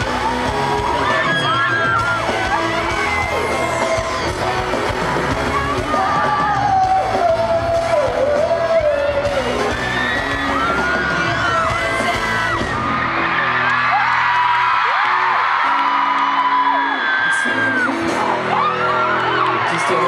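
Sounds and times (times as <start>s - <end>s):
amplified pop band with singing: 0.0s - 20.0s
fans singing and screaming: 0.0s - 20.0s.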